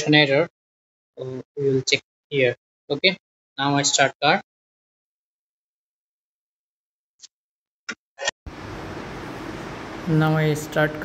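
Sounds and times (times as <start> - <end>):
steady low background noise: 8.5 - 11.0.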